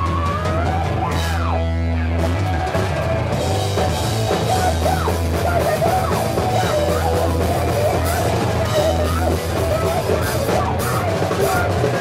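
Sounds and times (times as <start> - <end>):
punk band playing live: 0.0 - 12.0.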